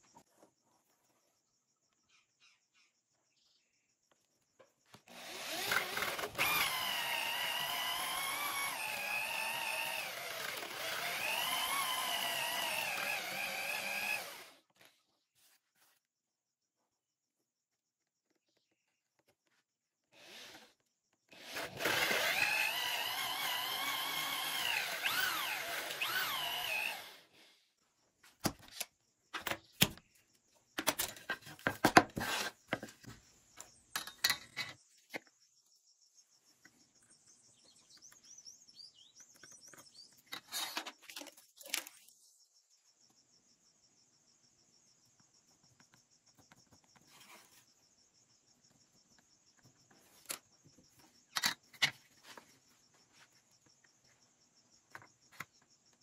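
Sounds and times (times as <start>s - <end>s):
drill boring into wood: 5.1s - 14.6s, 20.2s - 27.3s
tools and wood knocking: 30.8s - 35.4s, 51.3s - 52.3s.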